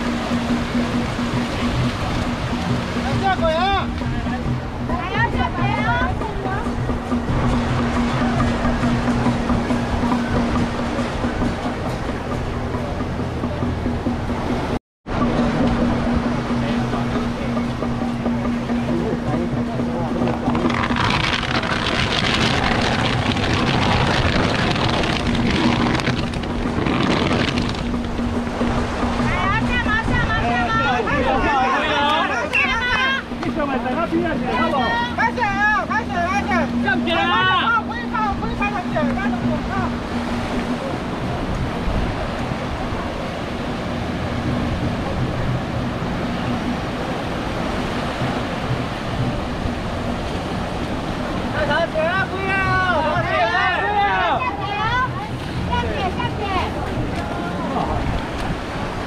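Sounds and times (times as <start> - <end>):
steady low tone: 0.0 - 31.5
waves breaking on beach: 0.0 - 59.0
wind rumble on microphone: 0.0 - 59.0.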